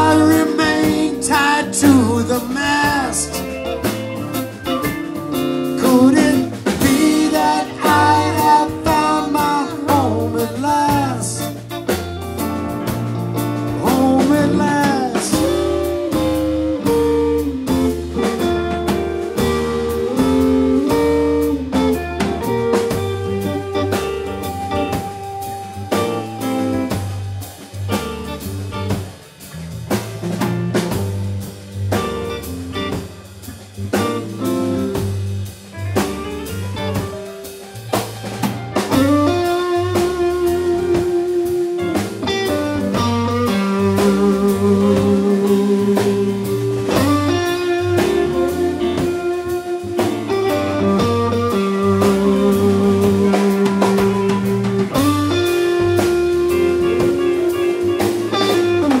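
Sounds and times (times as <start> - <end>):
live blues band playing: 0.0 - 59.0.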